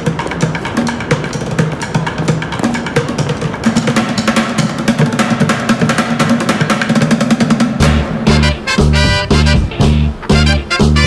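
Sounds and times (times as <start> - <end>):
low held note: 7.8 - 11.0.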